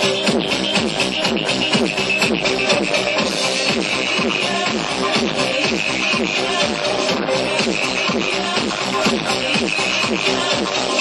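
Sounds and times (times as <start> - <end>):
dance music backing track: 0.0 - 11.0.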